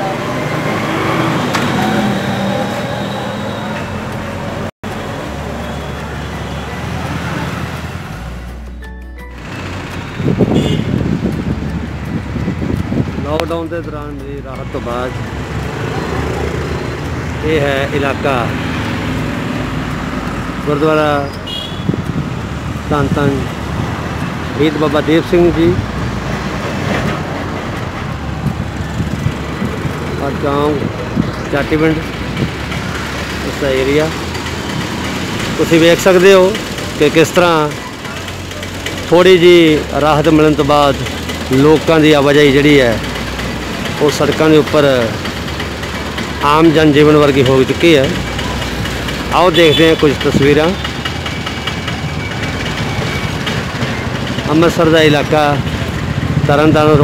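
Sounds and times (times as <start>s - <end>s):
motor scooters and cars passing: 0.0s - 57.0s
road vehicles rumbling by: 0.0s - 57.0s.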